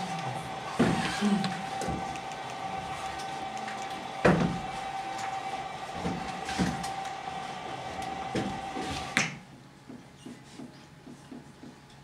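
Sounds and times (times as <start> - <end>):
steady room hum: 0.0 - 12.0.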